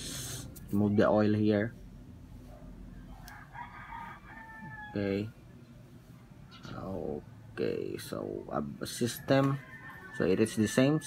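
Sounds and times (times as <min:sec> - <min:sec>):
rooster crowing: 0:03.1 - 0:05.4, 0:09.0 - 0:11.0.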